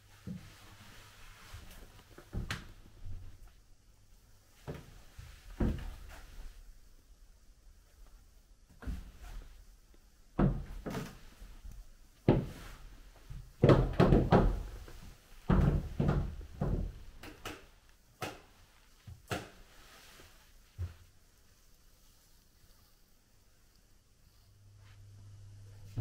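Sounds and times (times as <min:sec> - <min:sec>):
knocks and thumps: 0:13.3 - 0:17.1.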